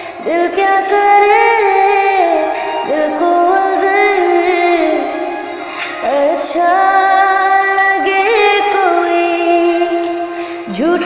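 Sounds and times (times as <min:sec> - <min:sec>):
woman singing slow melody: 0:00.0 - 0:11.0.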